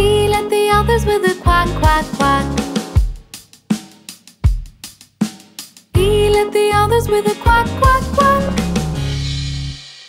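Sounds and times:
bass drum beats: 0.0 - 9.9.

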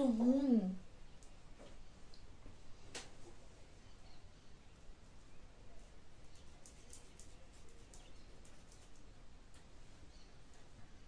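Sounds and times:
scissors snipping hair: 6.4 - 9.1.

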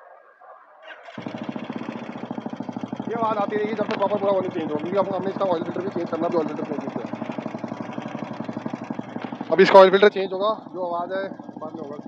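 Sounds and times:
motorcycle engine starting and running: 0.8 - 12.0.

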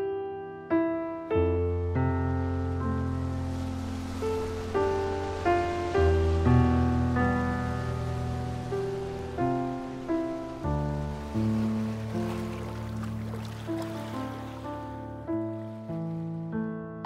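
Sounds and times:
slow gentle piano music: 0.0 - 17.0
faint water noise: 2.0 - 16.3.

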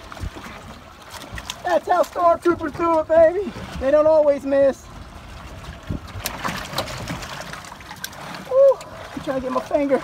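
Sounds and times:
water splashing and trickling: 0.0 - 10.0.

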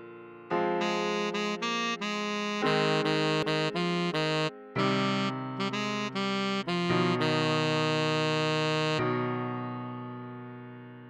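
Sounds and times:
keyboard chord ringing: 0.0 - 10.0
tenor saxophone note: 0.8 - 9.0.

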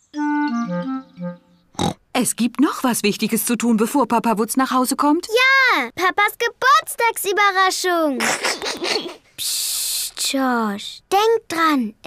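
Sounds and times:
cartoon music jingle: 0.1 - 1.7.

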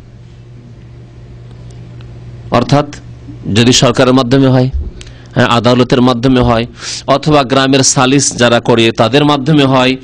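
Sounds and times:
low amplifier hum: 0.0 - 10.0.

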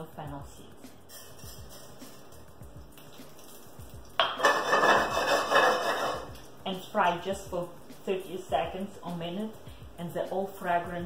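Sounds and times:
seeds sizzling in hot oil: 0.8 - 10.9.

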